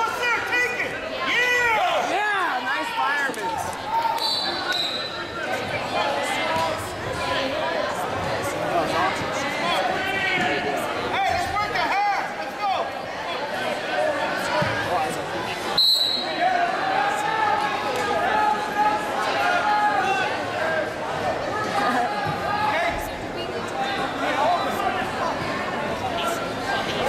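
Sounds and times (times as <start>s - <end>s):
crowd voices in a gym: 0.0s - 27.0s
referee whistle blast: 4.2s - 5.2s, 15.8s - 16.4s.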